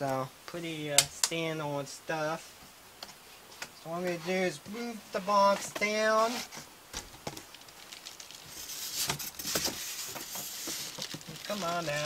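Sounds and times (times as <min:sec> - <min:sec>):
packing rustling and scraping: 0:05.4 - 0:12.0.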